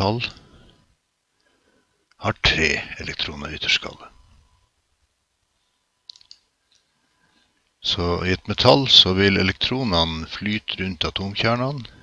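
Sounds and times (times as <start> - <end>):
faint clicks: 5.4 - 6.9.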